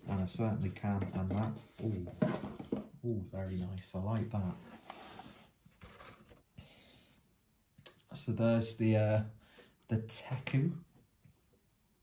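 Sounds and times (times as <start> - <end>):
faint breath through the nose: 6.6 - 7.3.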